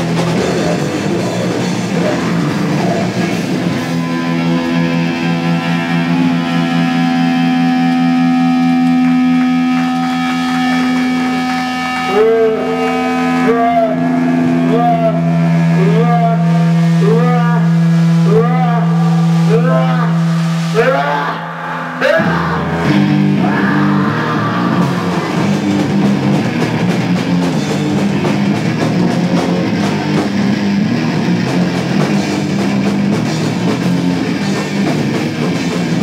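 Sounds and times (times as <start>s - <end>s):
sustained low note: 0.0s - 33.2s
wailing guitar pitch swoops: 0.0s - 35.7s
droning guitar notes: 0.0s - 36.0s
live rock band: 0.0s - 36.0s.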